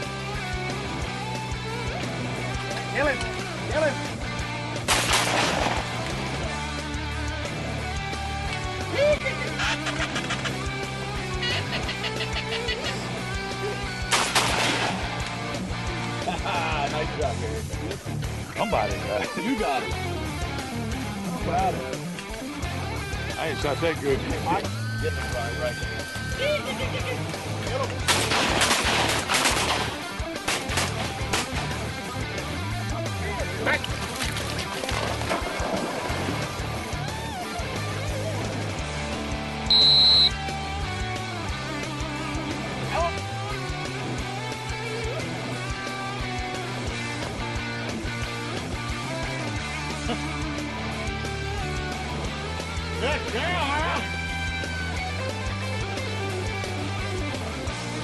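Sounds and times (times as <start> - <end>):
background guitar music: 0.0 - 58.0
shotgun blasts: 4.9 - 6.0, 14.1 - 15.2, 28.1 - 31.7
high whistle blast: 39.7 - 40.4.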